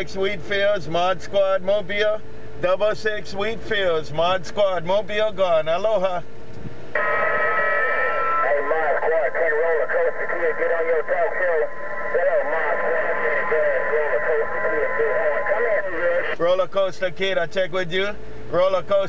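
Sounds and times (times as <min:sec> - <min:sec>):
radio hiss: 0:06.9 - 0:16.5
garbled voice over radio speaker: 0:07.0 - 0:16.4.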